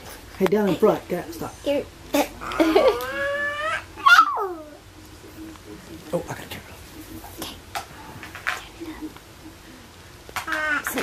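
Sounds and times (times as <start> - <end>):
toddler squealing and crying: 3.0 - 4.6.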